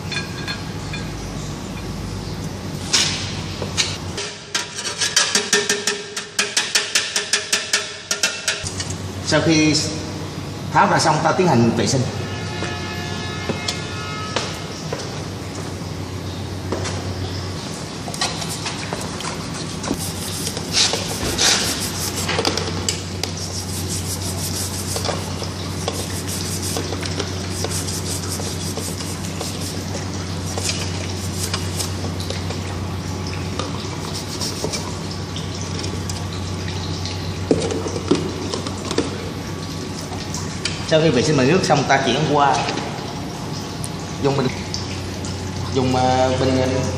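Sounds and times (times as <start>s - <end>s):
brush scrubbing metal screen: 19.9s - 22.6s, 23.2s - 32.1s, 34.0s - 34.9s
scrapes and knocks: 20.0s - 31.9s.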